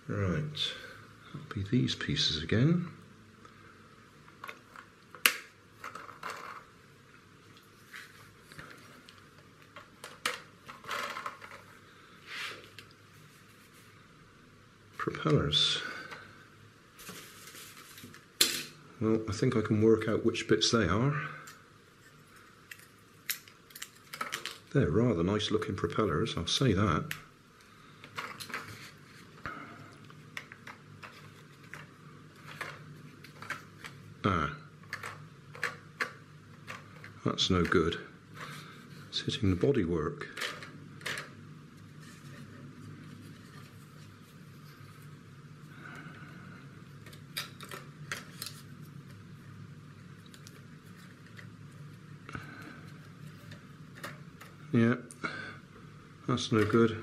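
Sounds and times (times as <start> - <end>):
steady low hum: 0.0 - 57.0
plastic parts clicking and tapping: 4.3 - 6.6, 8.6 - 11.7, 22.7 - 24.7, 30.3 - 34.0, 34.8 - 37.8, 40.3 - 41.4, 53.3 - 54.6.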